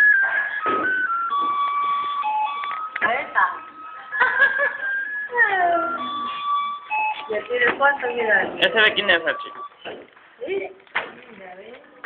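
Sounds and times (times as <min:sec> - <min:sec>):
electronic beeping melody: 0:00.0 - 0:10.0.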